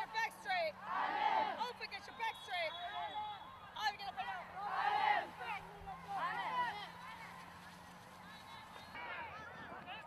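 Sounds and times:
group shouting together: 0.8 - 1.6, 4.6 - 5.3.

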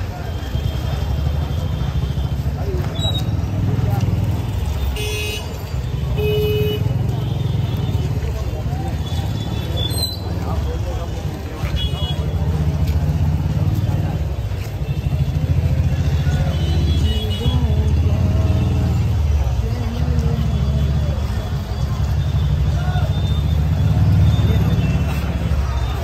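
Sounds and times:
crowd calling and chanting: 0.0 - 6.2, 6.8 - 26.0.

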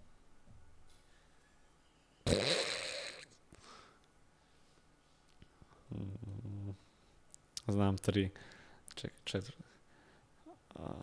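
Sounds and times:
soft short breath: 3.5 - 5.9, 8.4 - 8.8.

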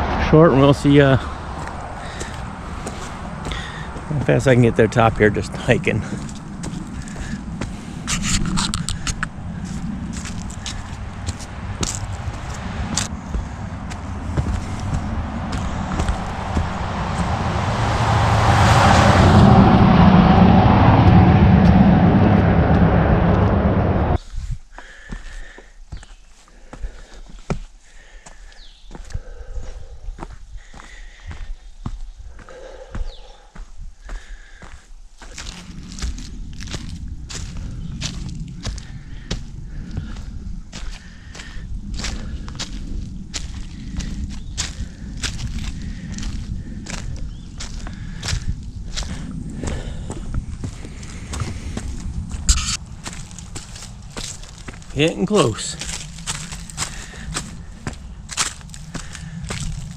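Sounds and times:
footsteps on dirt trail: 0.0 - 23.6, 24.2 - 59.9
rumbling microphone noise: 0.0 - 24.7, 35.2 - 59.9.

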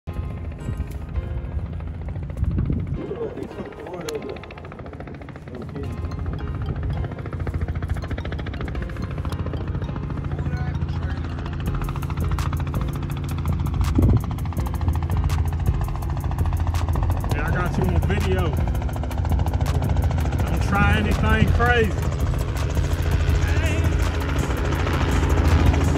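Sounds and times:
helicopter engine drone: 0.1 - 25.9
helicopter rotor blades beating: 0.1 - 25.9.

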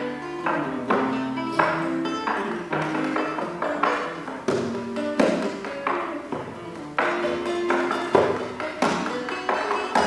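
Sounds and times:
classical guitar duet: 0.0 - 10.0.

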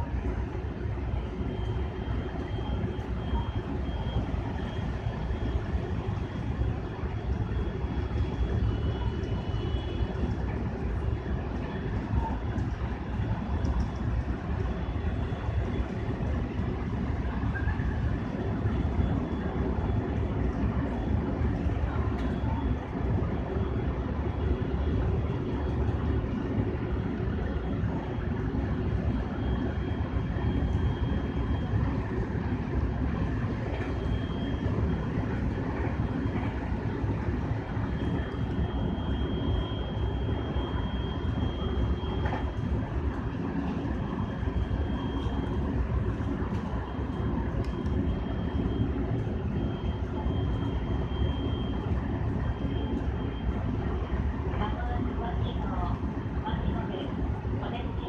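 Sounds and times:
electric train low rumble: 0.0 - 58.0.

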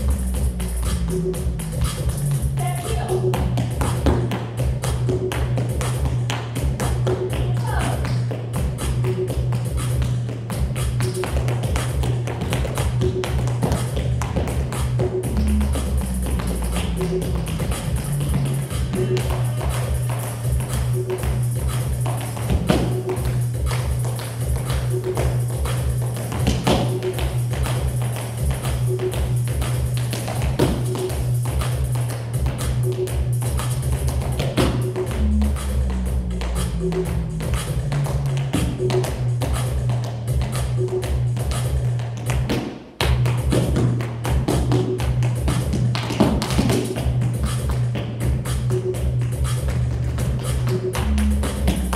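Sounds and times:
background music with steady beat: 0.0 - 51.9
tap shoes clicking on hard floor: 2.9 - 16.6, 29.9 - 32.6.

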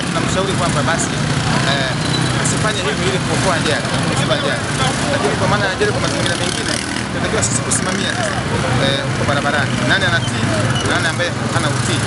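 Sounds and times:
man speaking: 0.0 - 12.0
vehicle engines running: 0.0 - 12.0.

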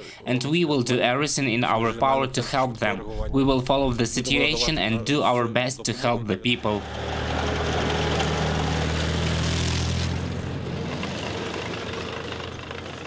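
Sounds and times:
armoured vehicle engine rumbling: 5.8 - 13.0.

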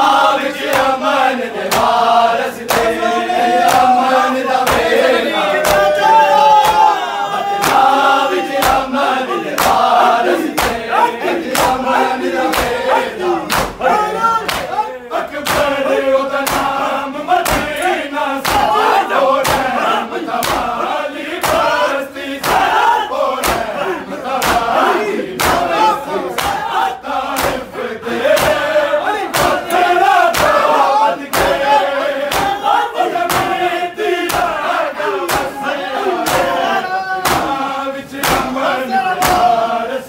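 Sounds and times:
men chanting a lament: 0.0 - 40.0
hand slaps on bare chests: 0.6 - 1.0, 1.7 - 2.0, 2.7 - 3.0, 3.6 - 4.0, 4.6 - 5.0, 5.6 - 6.0, 7.6 - 7.9, 8.5 - 8.9, 9.6 - 10.8, 11.4 - 11.8, 12.4 - 13.8, 14.4 - 14.8, 15.4 - 15.8, 16.4 - 16.8, 17.4 - 18.8, 19.4 - 19.8, 20.4 - 20.8, 21.4 - 21.8, 22.4 - 22.8, 23.4 - 23.8, 24.4 - 24.8, 25.4 - 25.8, 26.4 - 26.7, 27.3 - 27.7, 28.3 - 28.7, 29.3 - 30.7, 31.3 - 31.7, 32.3 - 32.6, 33.3 - 33.6, 34.3 - 34.6, 35.3 - 35.6, 36.2 - 36.6, 37.2 - 37.6, 38.2 - 38.6, 39.2 - 39.5.

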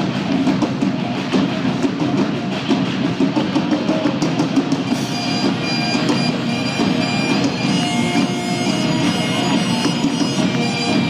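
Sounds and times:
live rock band playing: 3.3 - 11.0.

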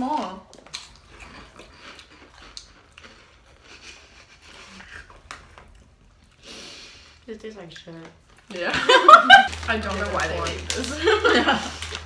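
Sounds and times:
people chewing crunchy snacks: 0.0 - 8.7, 9.5 - 12.0.

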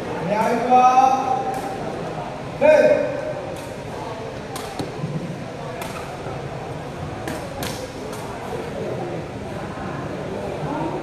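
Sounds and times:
low background voices: 0.0 - 11.0.

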